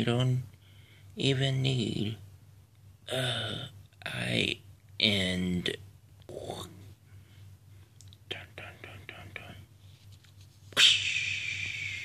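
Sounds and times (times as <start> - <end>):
person whispering: 6.3 - 6.8, 8.3 - 9.7, 10.8 - 12.0.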